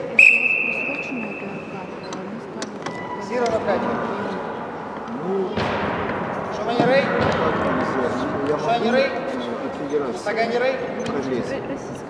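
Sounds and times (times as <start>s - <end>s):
people talking and calling: 0.0s - 12.0s
sharp bang: 5.5s - 8.5s.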